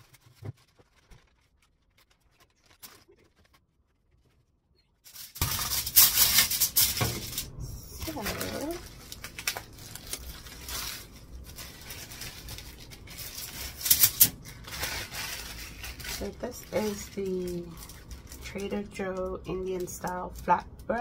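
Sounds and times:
plastic bag crinkling: 0.0 - 21.0.

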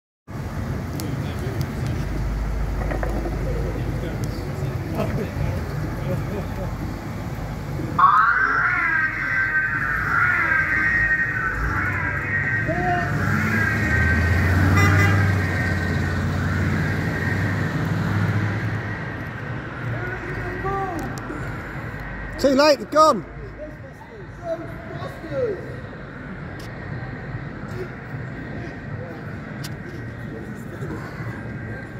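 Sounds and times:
car engine rumble: 0.3 - 22.4
wailing siren: 7.6 - 19.4.

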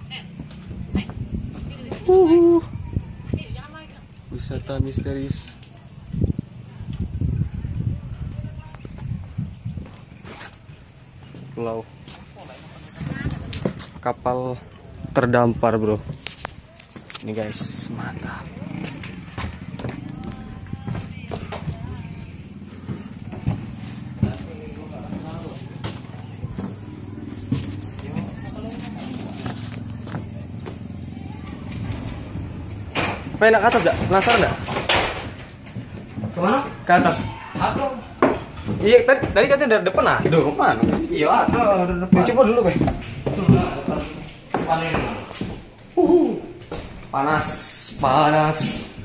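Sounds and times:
faint indistinct voices: 0.0 - 4.3, 5.5 - 13.9, 16.1 - 33.4
shuffling: 7.9 - 49.0
steady low hum: 17.8 - 34.1.

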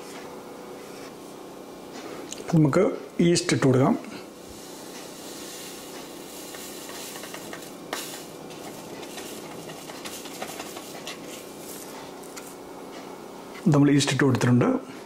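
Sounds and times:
steady hiss: 4.0 - 14.1.

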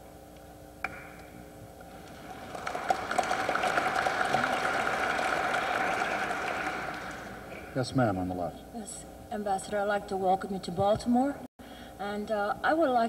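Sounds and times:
audience applauding: 1.9 - 7.8.

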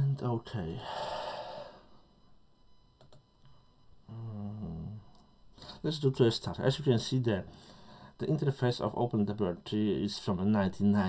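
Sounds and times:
man humming: 4.1 - 5.0.

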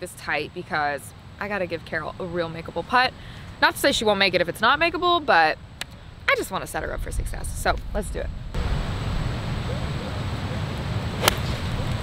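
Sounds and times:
golf club striking ball: 11.2 - 11.8.

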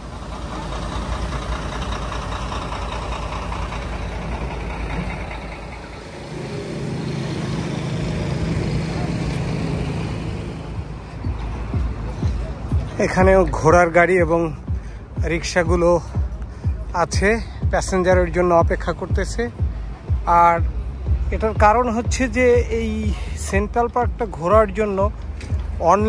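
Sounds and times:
heavy engine drone: 0.0 - 26.0
passing vehicles hum: 0.0 - 26.0.

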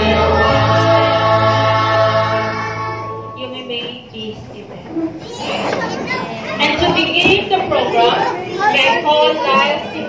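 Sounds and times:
children chattering: 4.4 - 10.0.

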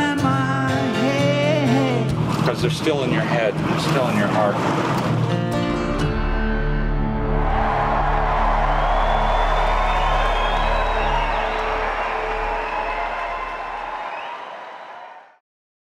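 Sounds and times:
audience cheering and applause: 7.0 - 15.4.

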